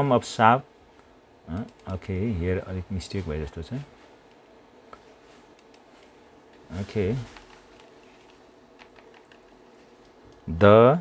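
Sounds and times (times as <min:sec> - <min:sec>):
faint keyboard keystrokes: 0:07.3 - 0:10.4.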